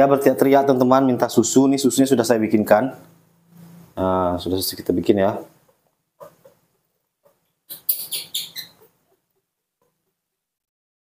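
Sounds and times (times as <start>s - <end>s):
baby monkey squealing: 7.7s - 9.1s.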